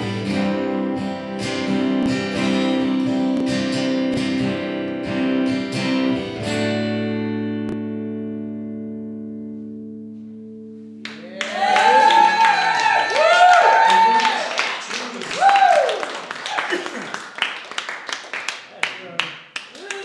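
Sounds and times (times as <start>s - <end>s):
acoustic guitar chord ringing: 0.0s - 11.1s
audience whooping: 11.1s - 17.5s
audience applause: 11.1s - 20.0s.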